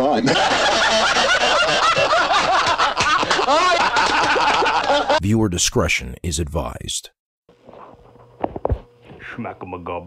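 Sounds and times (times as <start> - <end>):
man laughing hard: 0.0 - 5.2.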